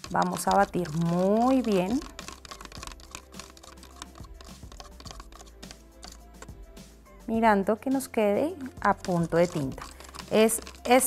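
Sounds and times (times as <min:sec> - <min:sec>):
stir stick scraping plastic cup: 0:00.0 - 0:06.6, 0:08.0 - 0:11.0.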